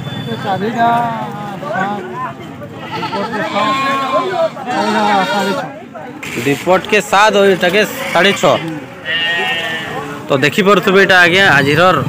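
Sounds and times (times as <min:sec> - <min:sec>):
people's voices: 0:00.0 - 0:12.0
young goat bleating: 0:02.7 - 0:05.7, 0:07.8 - 0:10.2.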